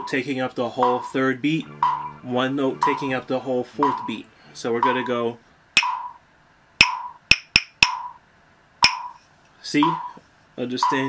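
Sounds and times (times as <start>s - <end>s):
wooden mallet knocks: 5.8s - 6.1s, 6.8s - 8.2s, 8.8s - 9.2s.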